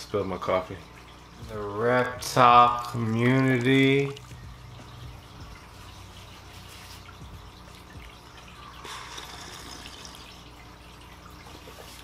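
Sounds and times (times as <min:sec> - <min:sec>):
low hum: 0:01.0 - 0:11.8.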